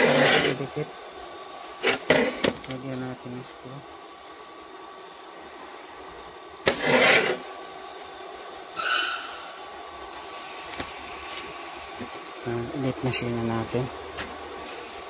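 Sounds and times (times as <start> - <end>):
scraping rub: 0.0 - 0.8, 1.7 - 2.5, 6.6 - 7.5
low steady hiss: 0.0 - 15.0
short high squeak: 8.8 - 9.4.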